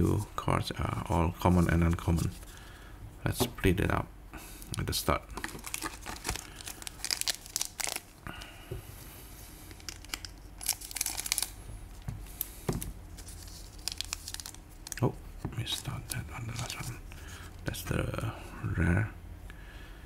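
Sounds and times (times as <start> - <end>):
foil pack tearing: 5.4 - 8.1, 9.9 - 11.6, 13.3 - 15.0
foil wrapper crackling: 5.4 - 8.2, 9.7 - 11.6, 13.1 - 16.9.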